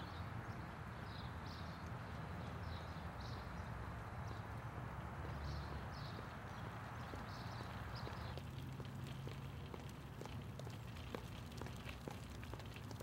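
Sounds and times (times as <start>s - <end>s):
outdoor background noise: 0.0s - 13.0s
stroller wheels clattering on pavement: 5.1s - 13.0s.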